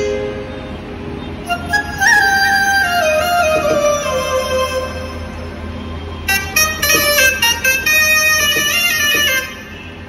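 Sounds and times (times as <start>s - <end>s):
shehnai keyboard melody: 0.0s - 10.0s.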